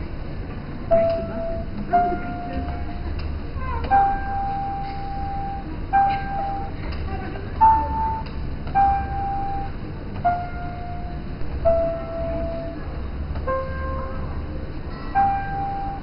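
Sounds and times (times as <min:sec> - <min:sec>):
floor piano sustained notes: 0:00.0 - 0:16.0.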